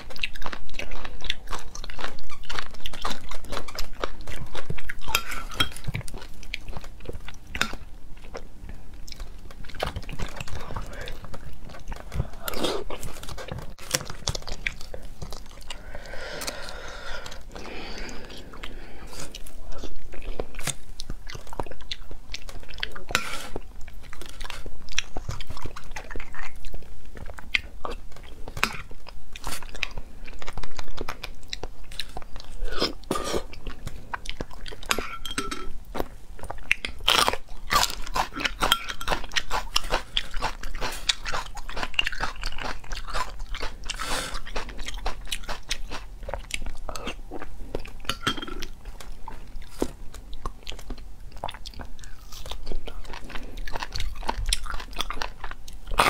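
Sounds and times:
wet chewing and lip-smacking: 0.0s - 56.0s.

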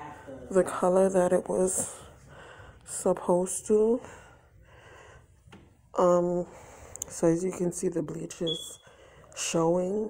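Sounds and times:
faint breath close to microphone: 4.0s - 5.4s, 6.4s - 7.2s, 8.8s - 9.4s.

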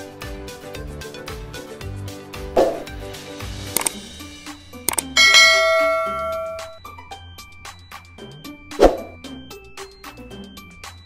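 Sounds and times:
background music: 0.0s - 11.0s
bright bell ding: 4.9s - 6.8s
button click: 4.9s - 6.8s.

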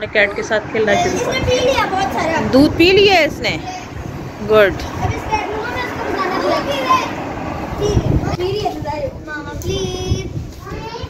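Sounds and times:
children talking outdoors: 0.0s - 11.0s
child pleading: 1.0s - 2.4s, 5.1s - 7.2s, 9.7s - 11.0s.

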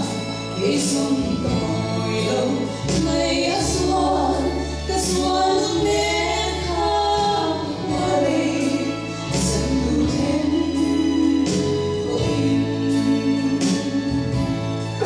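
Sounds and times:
keyboard bass notes: 0.0s - 15.0s
women singing a hymn: 0.0s - 15.0s.

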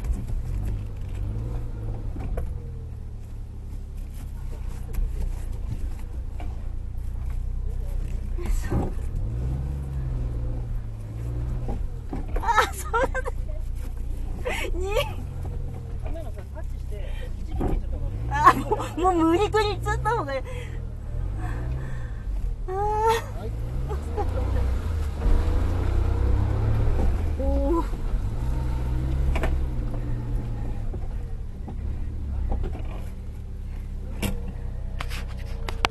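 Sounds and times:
car engine running: 0.0s - 35.9s.

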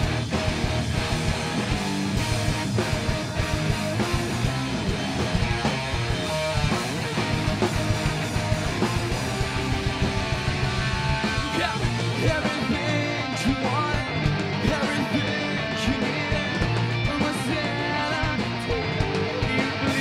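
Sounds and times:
bass guitar: 0.0s - 20.0s
drums: 0.0s - 20.0s
electric guitars: 0.0s - 20.0s.

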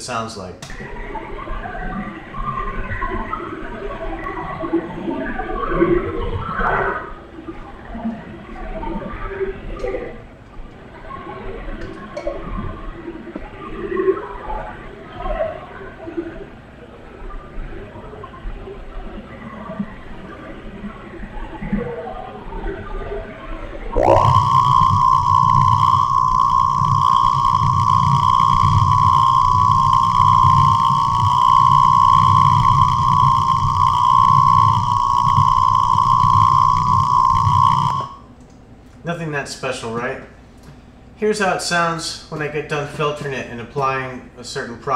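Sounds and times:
high-pitched interference whine: 23.9s - 38.4s
shortwave radio noise: 24.0s - 38.1s
low buzz: 24.0s - 38.3s.

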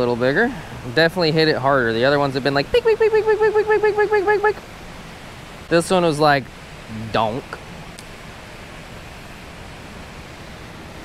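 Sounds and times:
rushing spillway water: 0.0s - 11.0s
man making high-pitched vocal notes: 2.6s - 4.6s.

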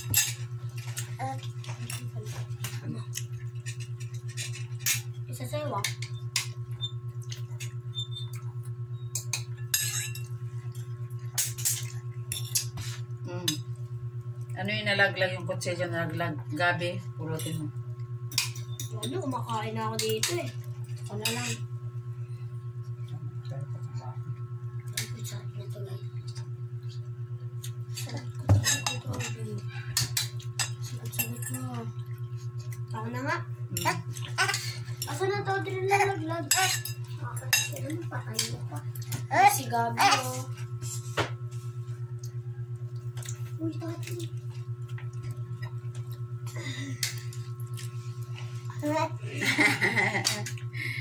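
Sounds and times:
utensils clinking against dishes: 0.0s - 5.2s, 5.8s - 10.4s, 11.2s - 13.7s, 17.2s - 17.7s, 18.3s - 21.7s, 27.6s - 31.8s, 33.7s - 41.0s, 46.5s - 47.8s
steady low hum: 0.0s - 51.0s
cutlery clinking on dishes: 9.2s - 10.3s, 28.0s - 29.4s, 36.5s - 37.8s.

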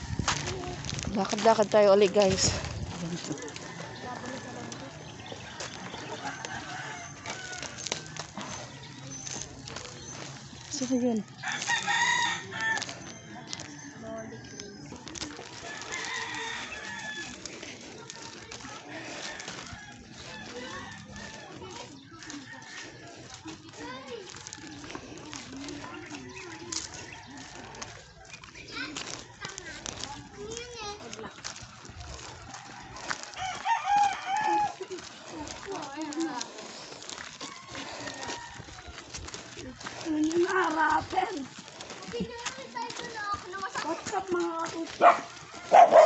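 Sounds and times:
rooster crowing: 3.6s - 4.9s, 6.0s - 8.9s, 11.4s - 14.7s, 15.6s - 17.4s, 32.5s - 34.9s, 37.4s - 38.9s.

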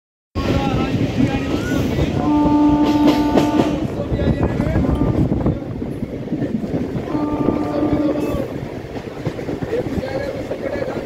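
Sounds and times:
moving train running noise: 0.4s - 11.0s
train wheels knocking: 0.4s - 11.0s
train horn: 2.1s - 4.0s, 4.8s - 5.5s, 7.1s - 8.6s.

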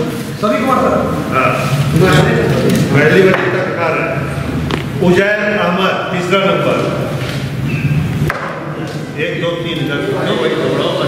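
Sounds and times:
sharp knock: 8.2s - 8.7s.

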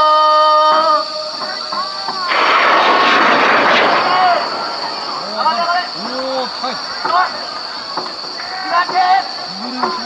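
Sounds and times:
rocket hissing roar: 2.3s - 8.4s.

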